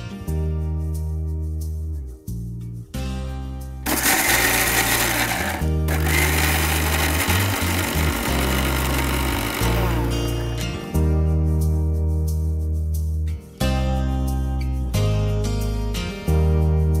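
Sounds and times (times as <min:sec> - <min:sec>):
background music: 0:00.0 - 0:17.0
electric mixer grinder running: 0:03.9 - 0:10.4.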